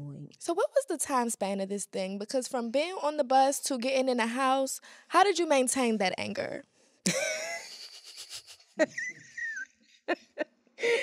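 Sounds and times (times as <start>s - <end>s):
woman laughing: 7.1s - 11.0s.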